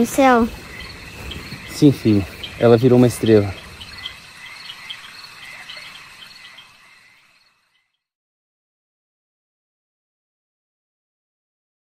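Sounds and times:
crickets chirping: 0:00.0 - 0:07.9.

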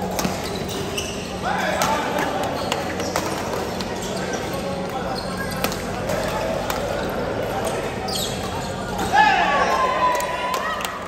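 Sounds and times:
shoe squeak on court floor: 0:00.2 - 0:01.4, 0:02.6 - 0:05.7, 0:07.7 - 0:09.0.

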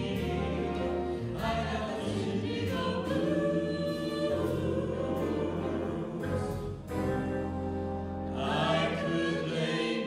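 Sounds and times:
jazz big band: 0:00.0 - 0:10.0
vocal group singing harmonies: 0:00.0 - 0:10.0.

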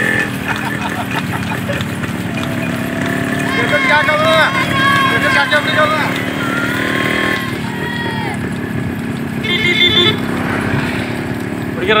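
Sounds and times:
motorcycle engines running: 0:00.0 - 0:12.0
man calling out: 0:03.4 - 0:08.1.

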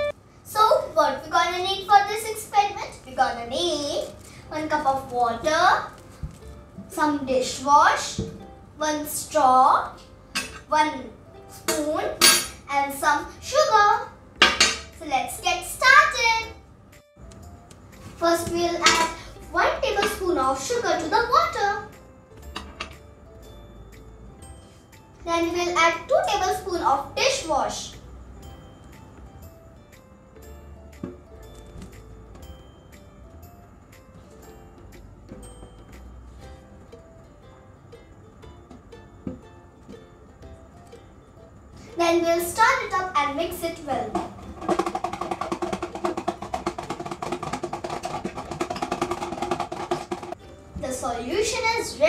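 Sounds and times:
faint background music: 0:00.0 - 0:52.0.

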